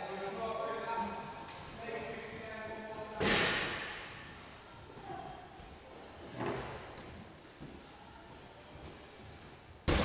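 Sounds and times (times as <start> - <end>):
faint gym background: 0.0 - 10.0.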